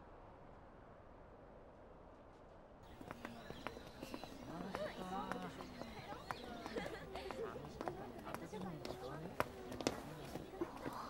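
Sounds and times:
background chatter of voices: 0:02.8 - 0:11.0
footsteps on pavement: 0:02.8 - 0:11.0
shoe clicks: 0:02.8 - 0:11.0.

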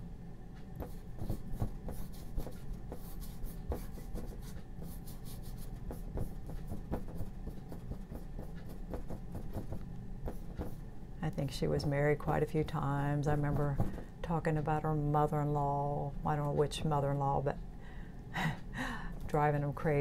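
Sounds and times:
steady low hum: 0:00.0 - 0:20.0
paintbrush scrubbing paint: 0:00.8 - 0:10.8.

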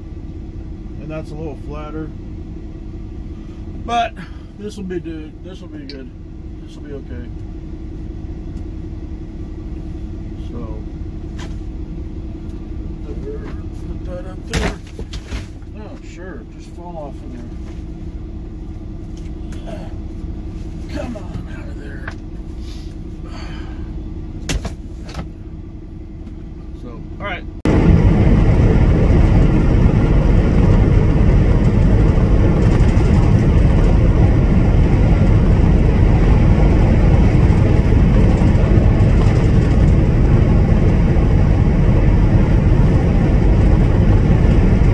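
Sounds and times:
loud steady rumbling: 0:00.0 - 0:44.9
truck engine idling: 0:00.0 - 0:44.9.

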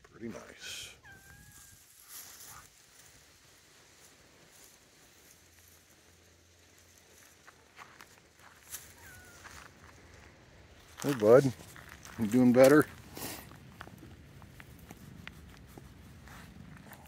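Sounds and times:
faint rustling: 0:00.3 - 0:17.0
cat meowing: 0:01.0 - 0:01.8, 0:08.7 - 0:09.7.

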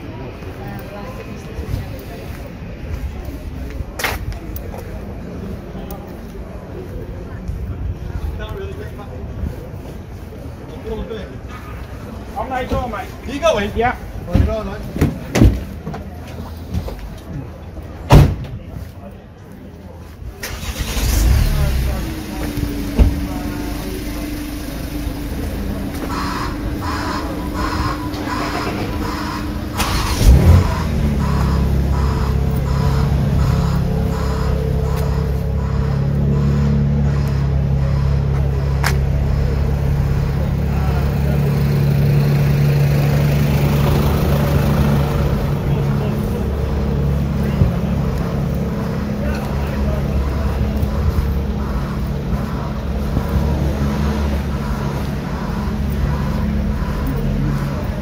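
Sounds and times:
footsteps on pavement: 0:00.1 - 0:20.4, 0:25.0 - 0:29.7, 0:31.0 - 0:40.4, 0:45.4 - 0:58.0
vehicle engine idling: 0:18.8 - 0:58.0.

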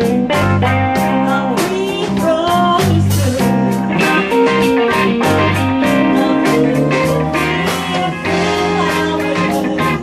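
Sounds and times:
bass: 0:00.0 - 0:10.0
blues band playing: 0:00.0 - 0:10.0
steady drum beat: 0:00.0 - 0:10.0
electric guitar bent notes: 0:03.2 - 0:10.0.

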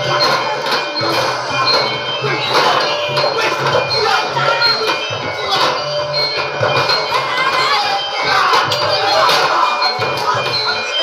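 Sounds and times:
children shouting and cheering: 0:00.0 - 0:11.0
music: 0:00.0 - 0:11.0.

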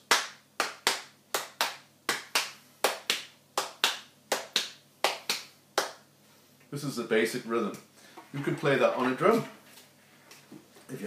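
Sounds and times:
hand claps in rhythm: 0:00.0 - 0:06.1.

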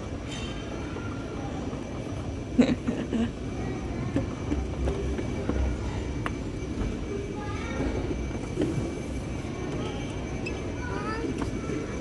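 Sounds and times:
faint voices: 0:00.0 - 0:12.0
moving walkway rumbling: 0:00.0 - 0:12.0.

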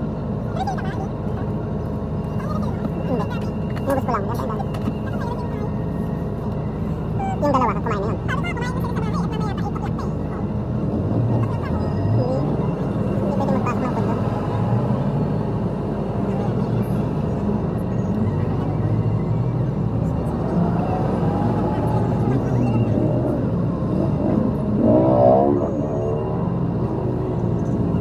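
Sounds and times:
vehicle engines running: 0:00.0 - 0:28.0
voices: 0:00.0 - 0:28.0.

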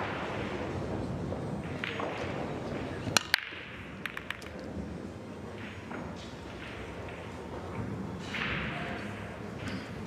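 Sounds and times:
pool balls cracking: 0:03.1 - 0:04.7
pool balls clicking together: 0:03.2 - 0:04.7.

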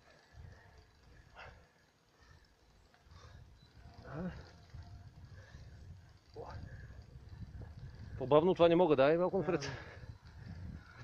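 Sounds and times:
bicycle tyres rolling: 0:00.0 - 0:11.0
faint voice or breath sounds: 0:00.1 - 0:05.8
wind rumble: 0:03.0 - 0:09.0, 0:09.6 - 0:11.0.

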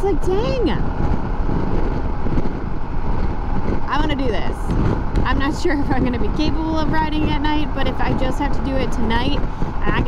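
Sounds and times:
motorcycle engine drone: 0:00.0 - 0:10.0
tyres on road: 0:00.0 - 0:10.0
wind rushing over microphone: 0:00.0 - 0:10.0.

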